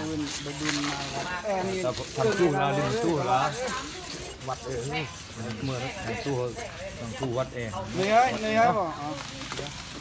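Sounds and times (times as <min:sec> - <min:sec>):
hacksaw cutting ivory: 0:00.0 - 0:10.0.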